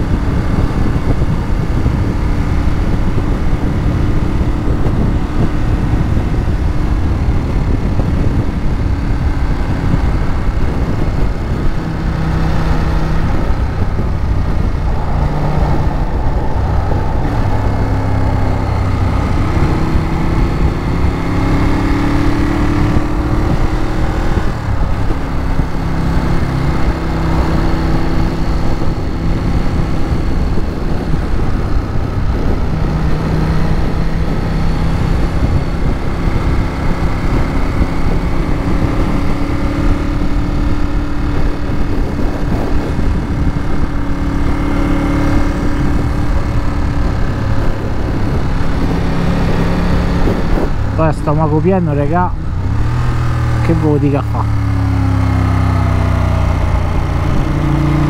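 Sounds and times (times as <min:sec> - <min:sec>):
motorcycle engine running: 0:00.0 - 0:58.0
wind rushing over microphone: 0:00.0 - 0:58.0.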